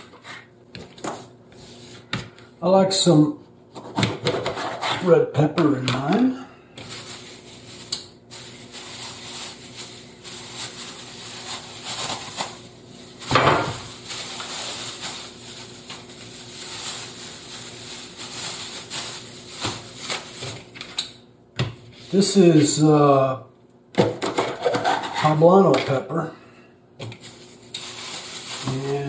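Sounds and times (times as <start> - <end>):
faint steady hum: 0.0 - 29.0
plastic bag rustling: 6.8 - 21.0, 27.1 - 29.0.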